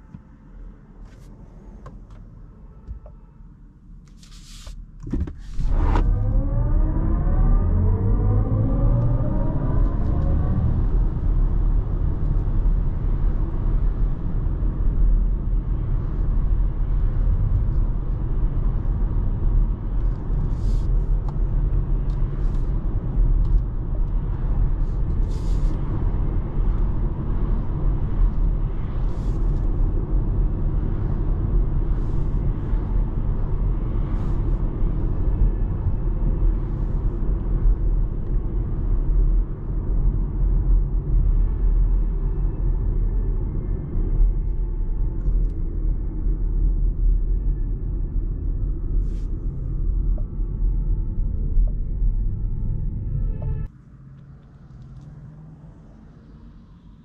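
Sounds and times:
electric car drive whine: 5.1 - 47.6.

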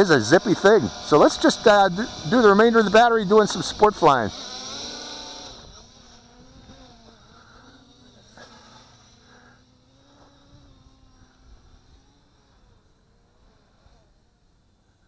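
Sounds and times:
drone propellers buzzing: 0.0 - 15.0.

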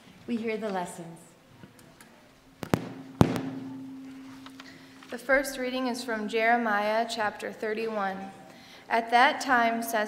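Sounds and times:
low steady hum: 2.5 - 5.2.

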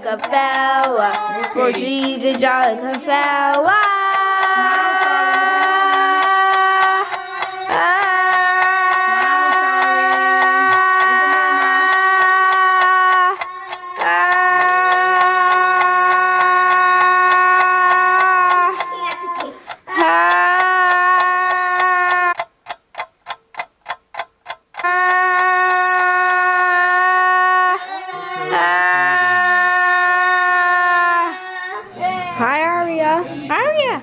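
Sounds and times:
even ticking clicks: 0.0 - 27.1.

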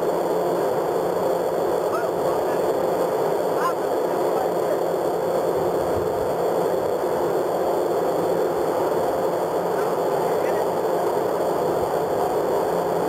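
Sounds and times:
machinery noise: 0.0 - 13.0
rushing wind: 0.0 - 13.0
steady hum: 0.0 - 13.0.

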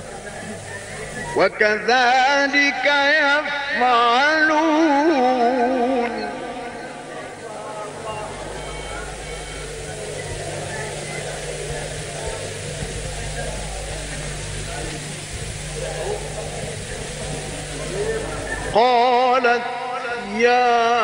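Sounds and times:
crowd murmuring and calling out: 0.0 - 21.0
electrical hum: 0.0 - 21.0
recording hiss: 0.0 - 21.0
person reciting: 1.0 - 9.1, 17.8 - 21.0.

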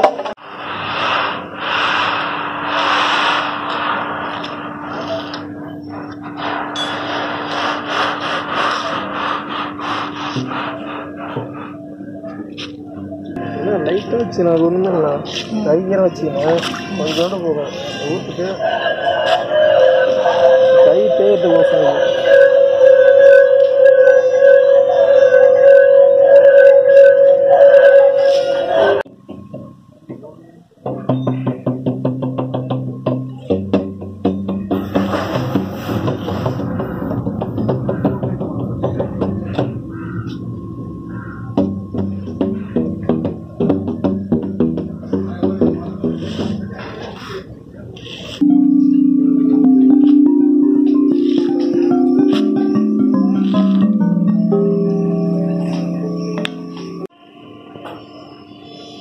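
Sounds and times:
high ringing overtone: 4.3 - 7.4, 10.6 - 29.2, 34.7 - 43.6, 48.4 - 59.0
singing stone humming: 18.4 - 29.1.

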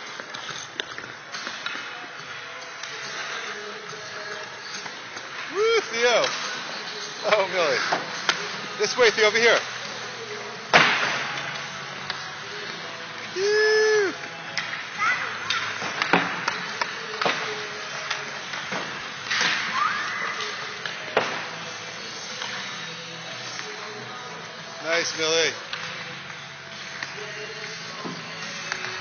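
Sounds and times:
hockey sticks and pucks clacking: 0.0 - 29.0.

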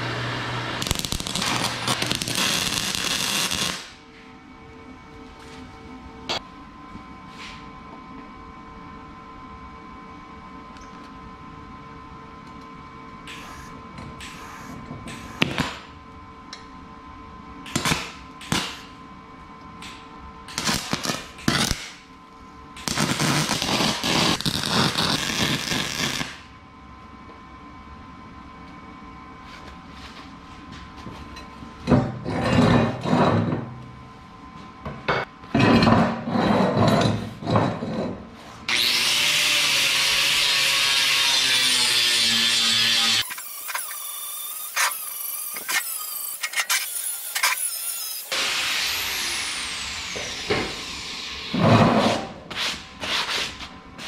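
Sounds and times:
electric arc welding: 0.7 - 4.0, 17.7 - 18.9, 20.5 - 22.0, 22.8 - 26.5, 38.7 - 51.5.

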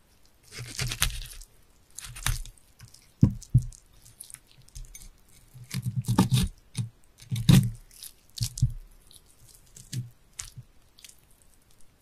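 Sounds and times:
knife cutting on cutting board: 0.5 - 1.2, 5.7 - 6.5.

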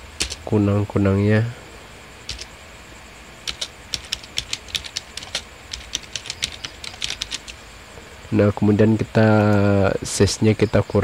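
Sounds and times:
typing on computer keyboard: 0.2 - 0.5, 2.3 - 2.5, 3.4 - 7.6, 9.3 - 9.7.

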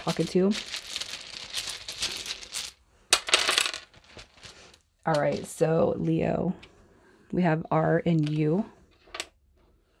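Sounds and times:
wooden tiles clattering on table: 0.0 - 4.5, 9.0 - 9.4.

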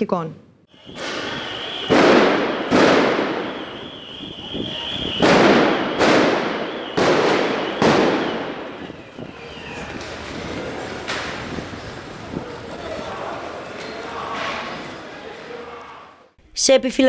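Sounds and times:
loud explosive bangs echoing: 0.8 - 9.4.

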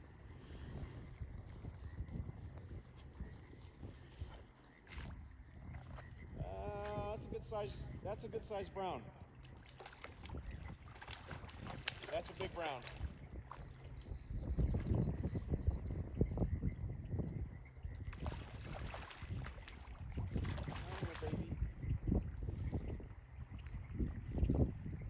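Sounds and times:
river water: 0.0 - 16.1, 17.7 - 23.8
wind gusting on microphone: 0.0 - 25.0.

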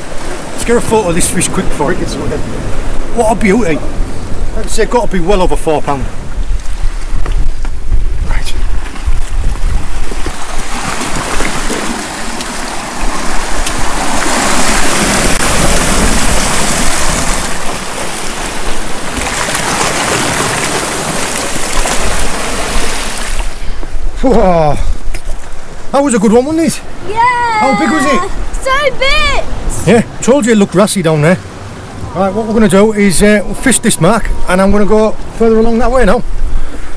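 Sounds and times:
sea waves washing over rocks: 0.0 - 8.0, 8.6 - 24.2
wind rumbling on microphone: 0.0 - 30.2, 31.4 - 36.9.

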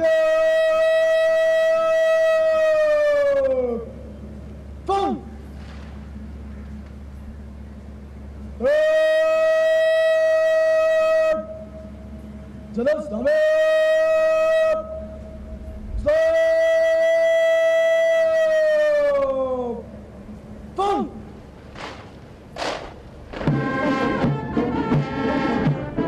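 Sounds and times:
shouted commands over loudspeaker: 4.8 - 5.3, 8.6 - 11.7, 12.8 - 15.1, 20.8 - 21.3.

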